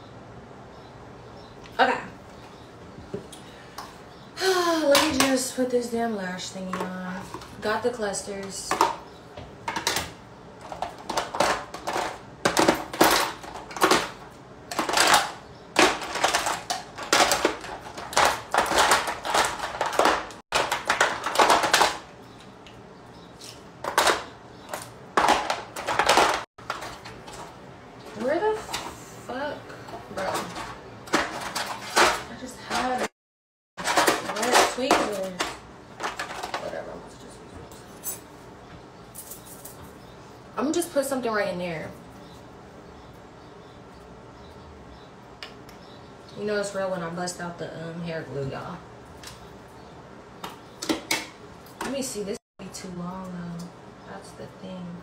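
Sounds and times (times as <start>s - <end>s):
small hard objects clattering: 9.7s - 22.1s, 23.4s - 28.9s, 30.1s - 33.1s, 33.8s - 37.1s, 39.1s - 40.0s
small objects clicking and rustling: 9.7s - 22.8s.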